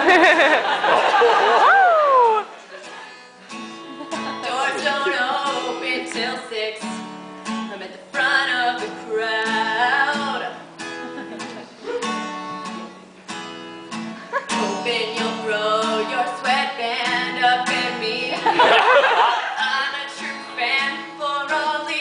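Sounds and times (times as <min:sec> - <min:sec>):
acoustic guitar strumming: 0:02.8 - 0:22.0.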